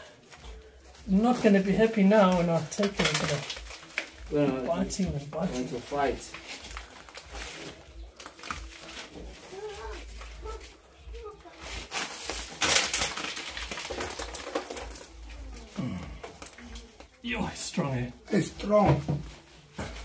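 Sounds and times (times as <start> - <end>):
quiet voices: 15.0 - 17.3
person murmuring: 15.6 - 16.4.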